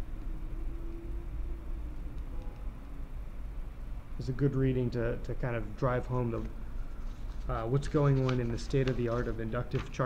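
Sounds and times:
faint steady tone: 0.0 - 7.0
steady low hum: 0.0 - 10.0.

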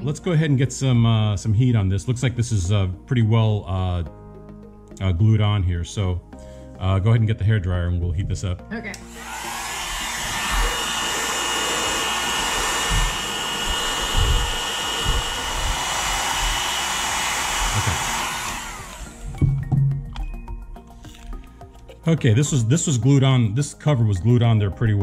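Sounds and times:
hair dryer blowing: 9.0 - 19.7.

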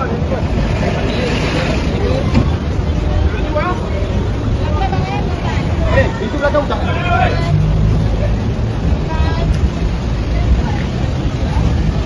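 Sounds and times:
men shouting and calling: 5.8 - 7.6.

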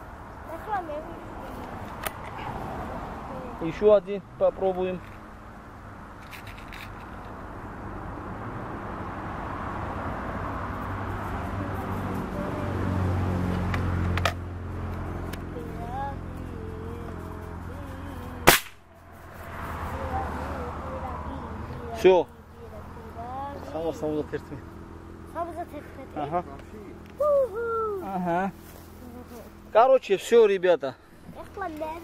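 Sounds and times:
low engine-like hum: 0.0 - 32.0
air rifle shot crack: 18.5 - 18.8.

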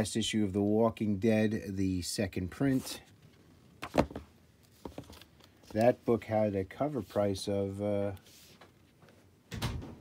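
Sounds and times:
comic book thump and rustle: 3.8 - 5.2.

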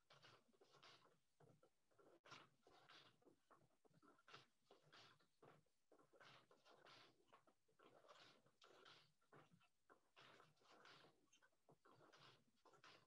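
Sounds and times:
loom shuttle and beater knocking: 0.0 - 13.0.

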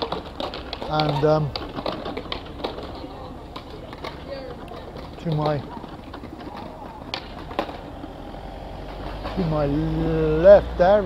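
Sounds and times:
distant voices: 0.0 - 11.0.

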